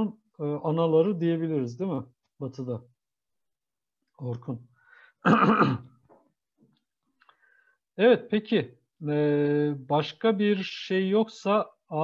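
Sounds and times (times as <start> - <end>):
man clearing his throat: 5.2 - 6.0.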